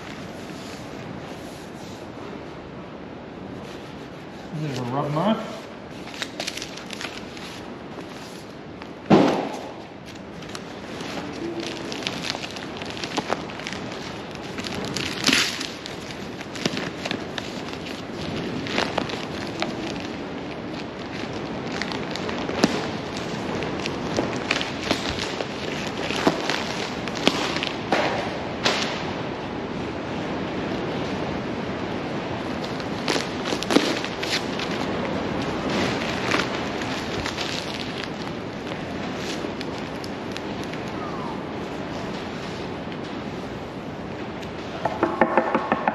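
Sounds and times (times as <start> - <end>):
newspaper tearing and crumpling: 3.6 - 8.6, 9.2 - 27.9, 32.3 - 42.7.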